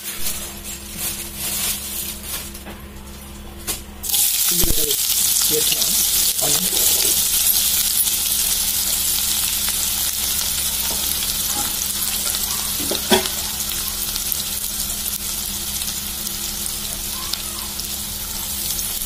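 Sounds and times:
onions sizzling in hot oil: 4.0s - 19.0s.

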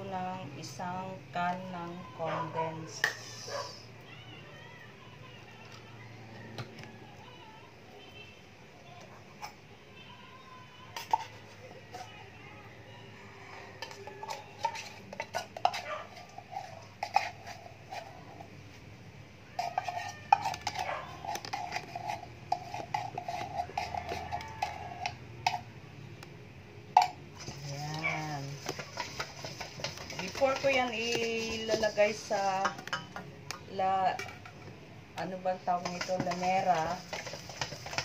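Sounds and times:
metal utensils clinking on bowl: 10.9s - 12.1s, 13.7s - 18.5s, 19.6s - 25.7s, 27.0s - 38.0s
wire whisk stirring: 13.7s - 18.6s, 19.5s - 25.7s, 27.0s - 33.1s, 35.2s - 38.0s.

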